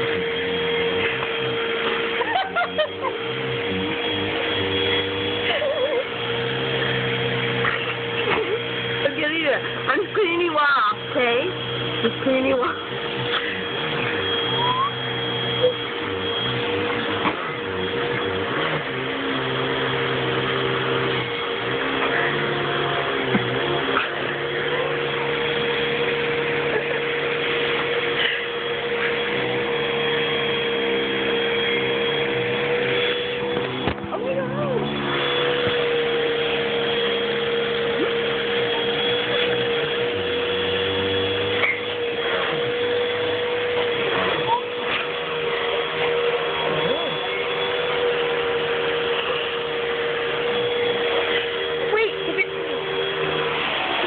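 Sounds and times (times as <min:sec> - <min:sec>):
vacuum cleaner running: 0:00.0 - 0:54.0.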